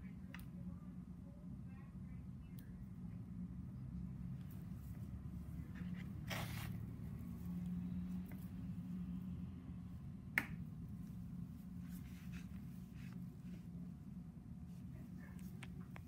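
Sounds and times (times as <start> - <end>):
steady low hum: 0.0 - 16.0
gauze rustling: 4.8 - 7.6, 11.0 - 13.8.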